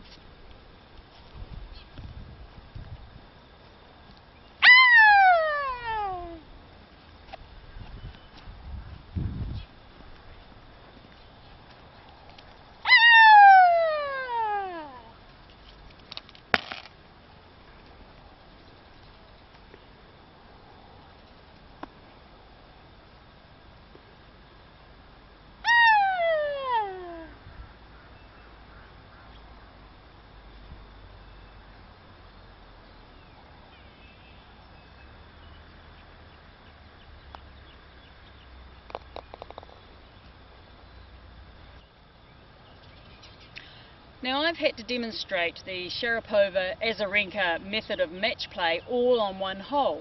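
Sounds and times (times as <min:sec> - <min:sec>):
woman shrieking: 0:04.6 - 0:06.4, 0:12.9 - 0:15.2, 0:25.7 - 0:27.4.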